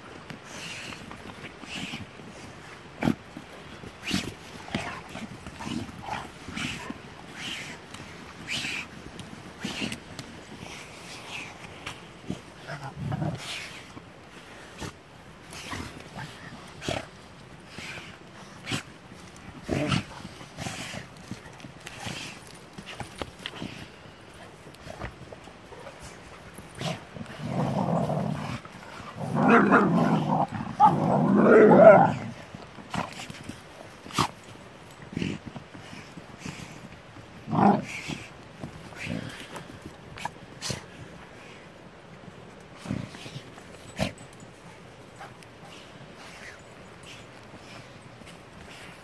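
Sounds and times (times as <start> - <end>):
rustles: 0.0 - 49.0
dogs growling: 1.0 - 9.0, 10.6 - 33.4, 37.3 - 38.3.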